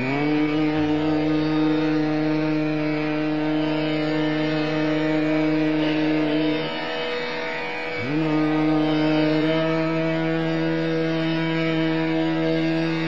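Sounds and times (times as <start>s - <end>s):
man singing a long note: 0.0s - 6.9s, 8.0s - 13.0s
harmonium: 0.0s - 13.0s
tanpura drone: 0.0s - 13.0s.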